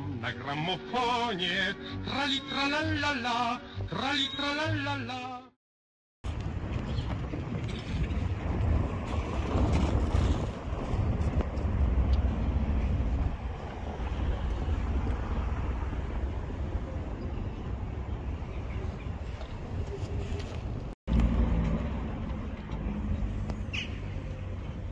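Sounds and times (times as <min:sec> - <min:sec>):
wind buffeting microphone: 0:06.3 - 0:20.9.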